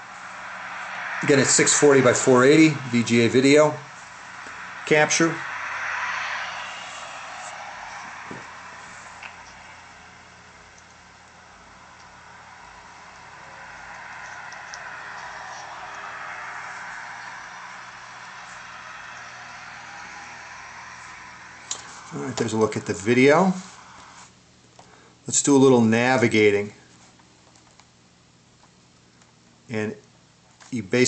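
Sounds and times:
cars passing: 0.0s - 24.3s.

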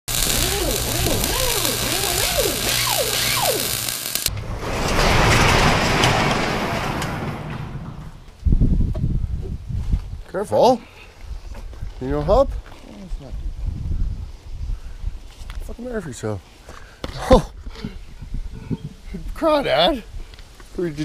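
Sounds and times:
noise with swooping pitches: 0.1s - 5.4s
garage door rattling: 4.4s - 8.3s.

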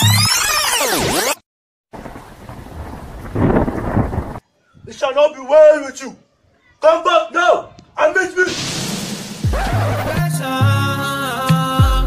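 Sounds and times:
thunder rumble: 2.0s - 4.4s.

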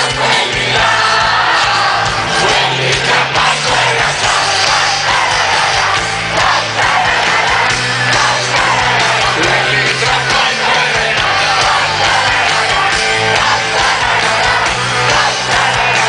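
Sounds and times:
crowd cheering and yelling: 0.0s - 16.0s
live rock band playing: 0.0s - 16.0s.

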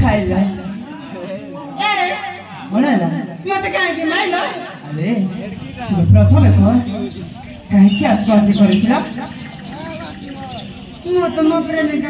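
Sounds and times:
actors' amplified speech: 0.0s - 12.0s
faint voices murmuring: 0.0s - 12.0s.

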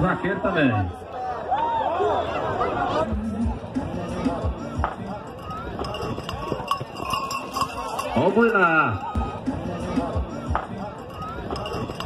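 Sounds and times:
horse hooves on dry dirt: 5.6s - 8.7s.

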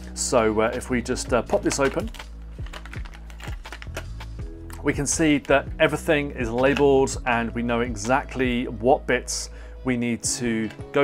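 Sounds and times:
quiet background music: 0.0s - 11.0s
plastic packaging clicks and crackles: 1.5s - 4.8s.

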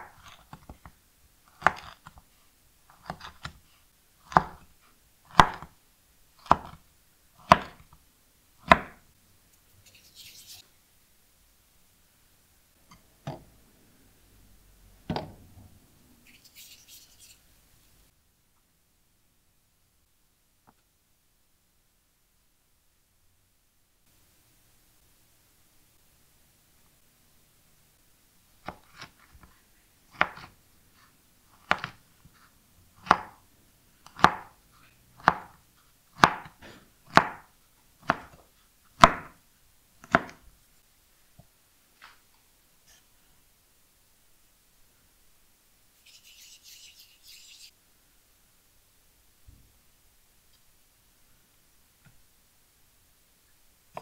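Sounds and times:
knife slicing cookie dough: 0.0s - 2.3s, 2.9s - 5.8s, 6.4s - 8.0s, 8.6s - 9.0s, 28.6s - 29.5s, 30.1s - 33.4s, 34.0s - 39.4s, 40.0s - 40.4s
hands rubbing dough: 9.7s - 10.7s, 16.2s - 17.5s, 46.0s - 47.8s.

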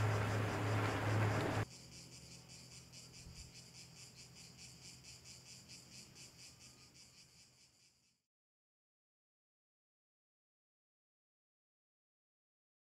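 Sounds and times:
insects chirping: 0.0s - 8.2s.

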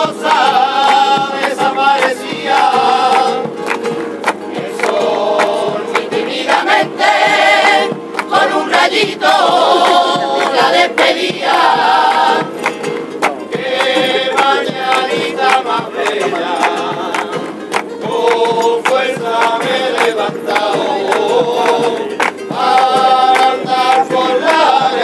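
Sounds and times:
choir singing in chorus: 0.0s - 25.0s
hand-clapping in time: 0.0s - 25.0s.

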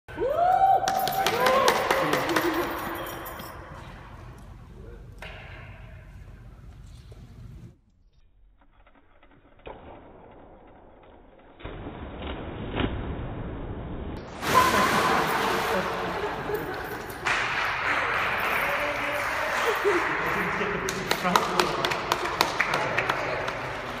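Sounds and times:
voices whooping and cheering: 0.1s - 3.0s
hand claps: 0.8s - 3.5s, 17.0s - 24.0s
bike splashing into water: 11.6s - 16.6s.

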